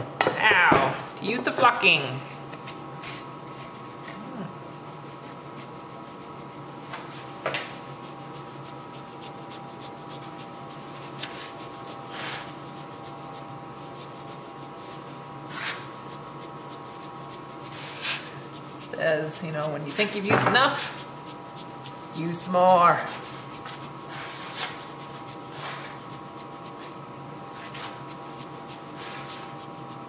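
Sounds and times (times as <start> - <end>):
steady background hum: 0.0 - 30.0.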